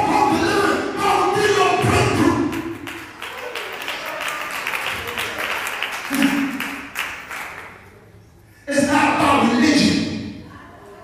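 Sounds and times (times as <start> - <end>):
hands clapping: 2.5 - 7.8.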